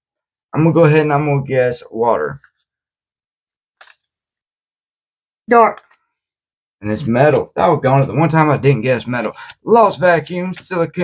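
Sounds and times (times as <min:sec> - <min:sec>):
trading cards rustling: 0:03.8 - 0:04.2, 0:08.0 - 0:11.0.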